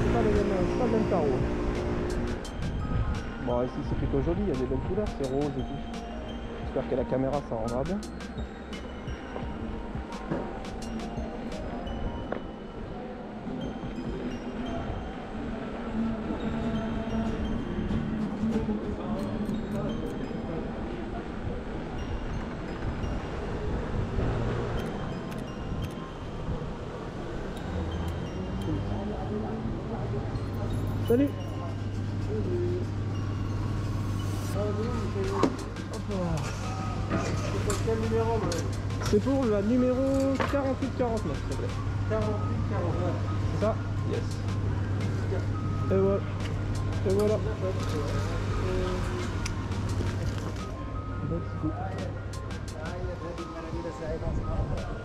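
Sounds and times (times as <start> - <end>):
faint music: 0.0 - 55.0
indistinct voices: 26.0 - 33.7.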